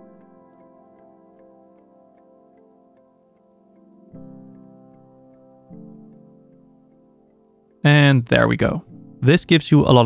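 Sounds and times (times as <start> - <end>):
soft held chords: 0.0 - 10.0.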